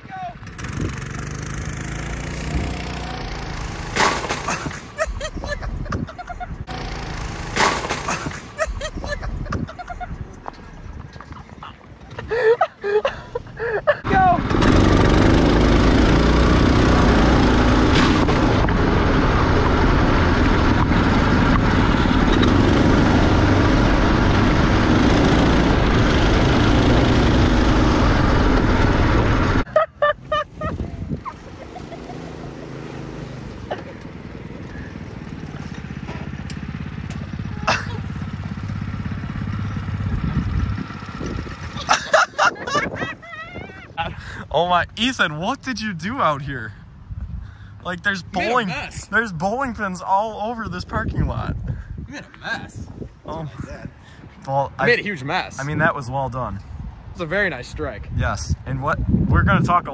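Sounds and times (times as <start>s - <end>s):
wind noise: 0.0s - 1.4s, 8.7s - 12.5s, 17.8s - 31.9s, 39.8s - 44.9s, 46.8s - 49.1s, 49.7s - 59.9s
go-kart motor running: 0.4s - 10.6s, 14.0s - 29.7s, 31.1s - 42.2s.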